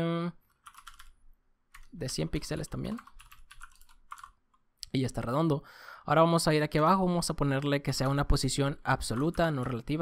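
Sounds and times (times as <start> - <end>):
person speaking: 0.0 - 0.9, 1.8 - 10.0
keyboard typing: 0.5 - 4.6, 9.0 - 10.0.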